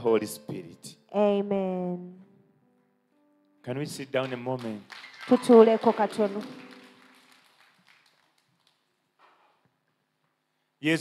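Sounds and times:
music: 0.0s - 8.5s.

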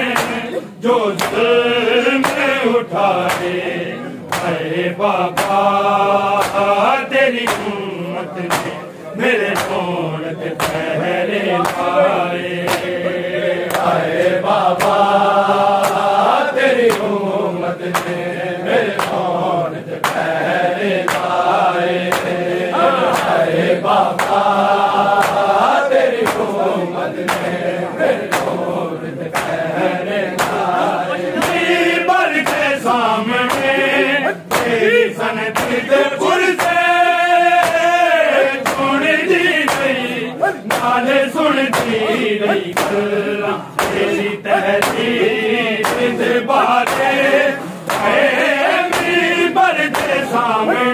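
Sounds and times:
hand slaps on bare chests: 0.0s - 3.7s, 4.3s - 7.8s, 8.4s - 8.8s, 9.4s - 13.0s, 13.6s - 17.2s, 17.8s - 28.7s, 29.3s - 50.5s
men chanting in chorus: 0.0s - 50.9s.

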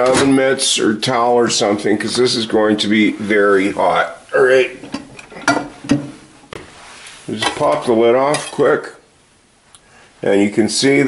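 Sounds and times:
crockery knocks: 4.8s - 6.2s.

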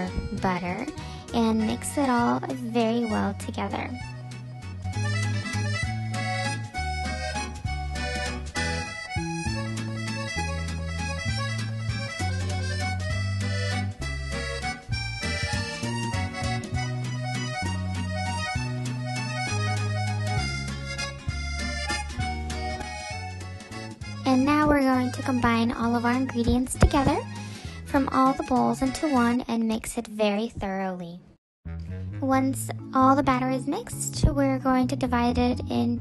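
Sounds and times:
instrumental music with bass and beat: 0.0s - 29.3s, 31.7s - 34.5s.

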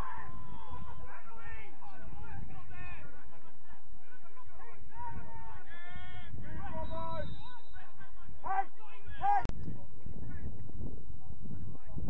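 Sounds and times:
people shouting to each other: 0.0s - 3.0s.

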